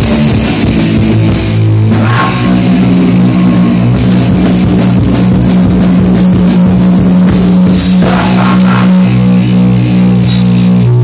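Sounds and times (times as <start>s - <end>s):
punk band playing loud: 0.0s - 11.0s.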